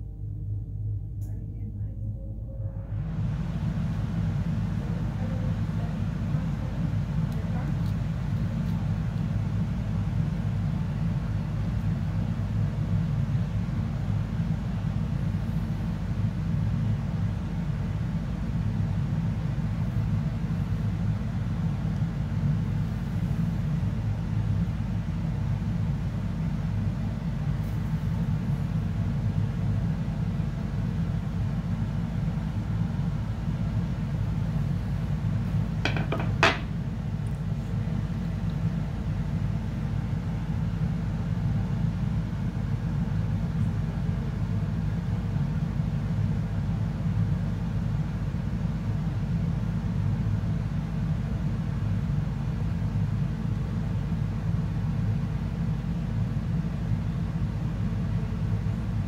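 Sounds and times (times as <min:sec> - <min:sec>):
low background rumble: 0:00.0 - 0:59.0.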